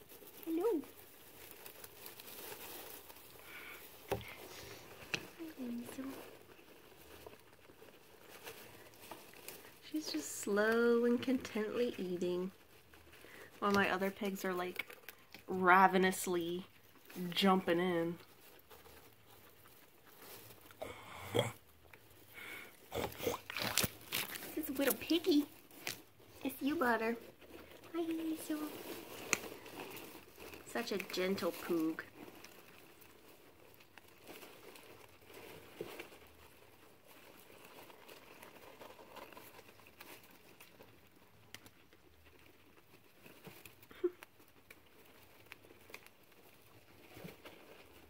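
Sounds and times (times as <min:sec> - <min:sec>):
guinea pig chewing hay: 0:00.0 - 0:48.0.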